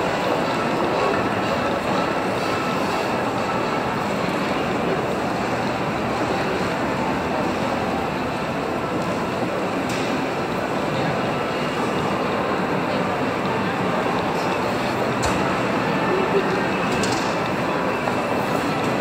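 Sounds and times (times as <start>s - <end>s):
crowd hubbub echoing: 0.0s - 19.0s.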